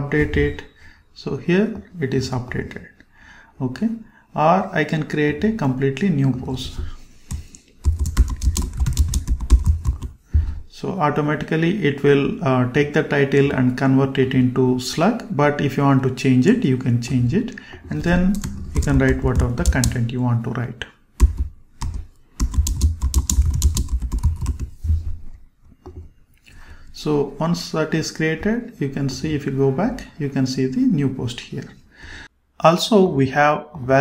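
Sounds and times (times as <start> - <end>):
keyboard typing: 6.2 - 10.2, 17.0 - 20.0, 21.2 - 25.0.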